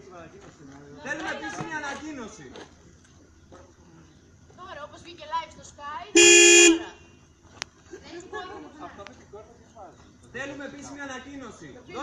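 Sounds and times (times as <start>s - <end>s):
car horn blast: 6.2s - 7.1s.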